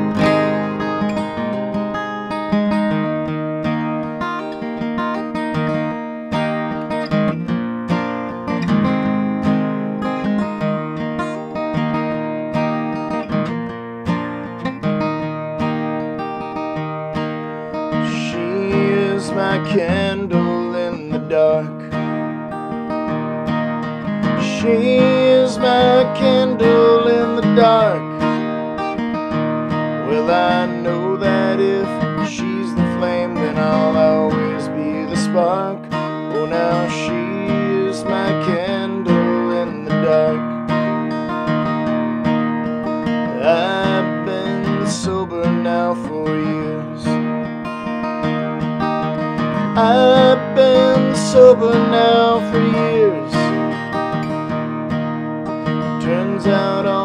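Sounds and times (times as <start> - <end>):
acoustic guitar strumming: 0.0 - 57.0
person singing: 17.8 - 22.0, 24.3 - 28.8, 30.0 - 40.7, 43.3 - 47.3, 49.6 - 53.9, 55.9 - 57.0.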